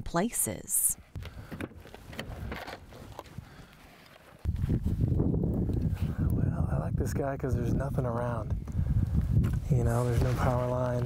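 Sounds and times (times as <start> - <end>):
rush of wind and rustling: 1.2 - 11.0.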